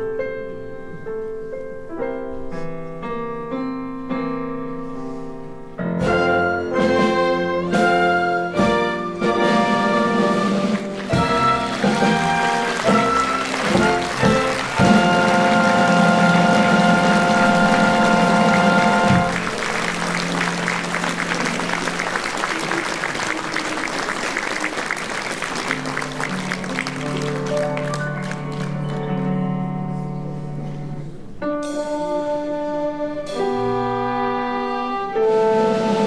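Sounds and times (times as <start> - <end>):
orchestra playing operetta music: 6.0 - 29.2, 31.6 - 36.0
audience applause: 9.9 - 29.3.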